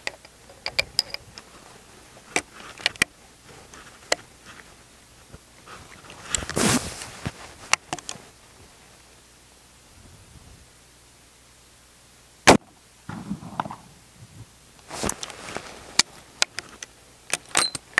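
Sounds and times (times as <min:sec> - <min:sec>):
short scraping rustle: 0:01.4 - 0:08.4, 0:14.8 - 0:16.1
rifle breech metallic clicks: 0:16.0 - 0:17.9.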